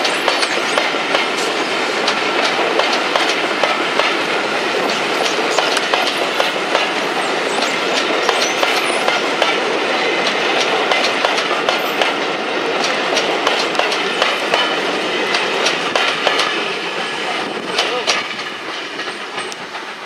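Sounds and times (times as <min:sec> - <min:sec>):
train rumble: 0:00.0 - 0:20.0
train wheels clicking over rail joints: 0:00.0 - 0:20.0.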